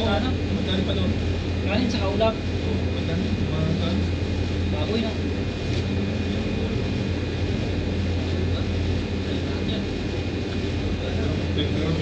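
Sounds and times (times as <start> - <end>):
air conditioners humming: 0.0 - 12.0
faint high whine: 0.0 - 12.0.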